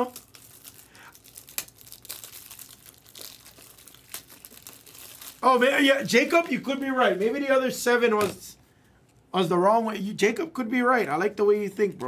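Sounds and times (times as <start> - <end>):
wrapper snapping: 0.0 - 5.5
foil wrapper crinkling: 0.0 - 7.5.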